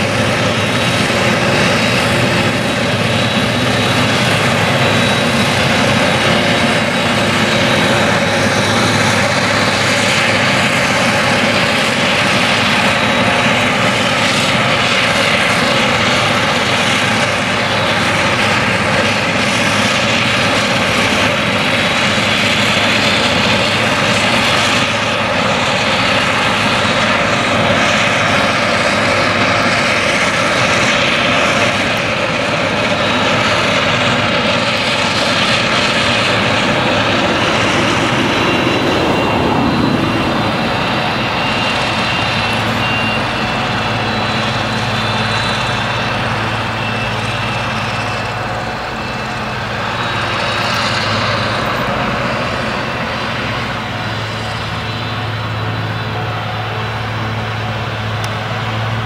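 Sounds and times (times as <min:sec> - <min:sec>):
forage harvester droning with whine: 0:00.0 - 0:59.0.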